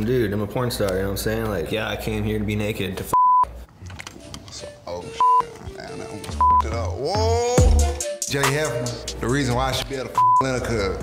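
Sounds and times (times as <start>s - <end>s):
background music: 3.0s - 11.0s
censor bleeps: 3.2s - 3.5s, 5.2s - 5.4s, 6.4s - 6.7s, 10.2s - 10.5s.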